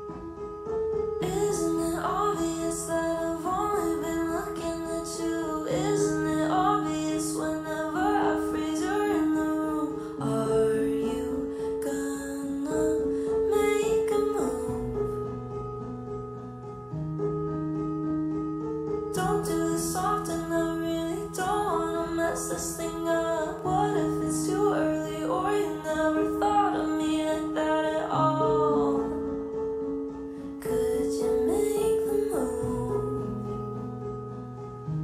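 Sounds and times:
slow pop song: 0:01.2 - 0:15.2, 0:19.2 - 0:29.5, 0:30.4 - 0:33.7
woman singing: 0:01.2 - 0:15.2, 0:19.2 - 0:29.4, 0:30.6 - 0:33.5.

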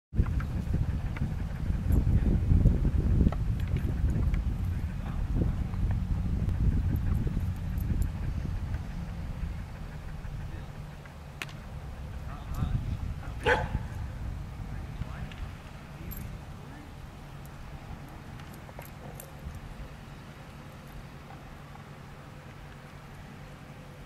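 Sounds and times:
low rumble on microphone: 0:00.1 - 0:22.7.

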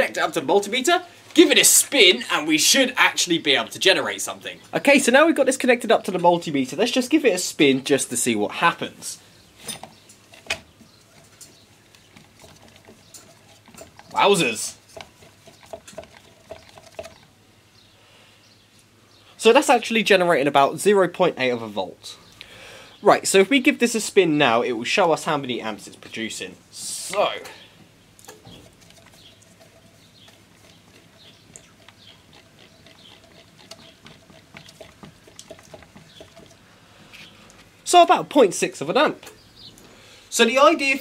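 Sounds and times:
fan whirring: 0:08.2 - 0:17.7, 0:23.9 - 0:40.1.

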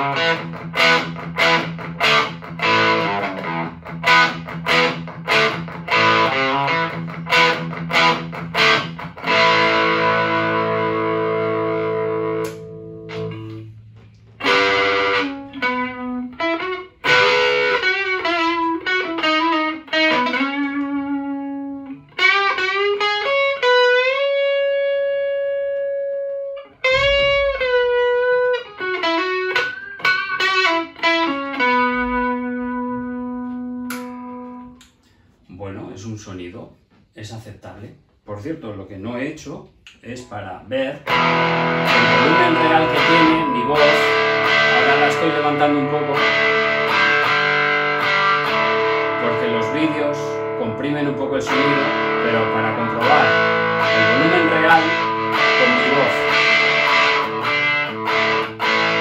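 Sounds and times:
distorted electric guitar: 0:00.0 - 0:35.0, 0:41.0 - 0:59.0.

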